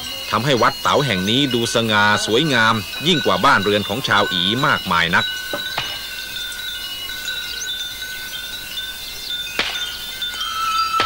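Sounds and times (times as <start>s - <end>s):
chimes ringing: 0.0s - 11.0s.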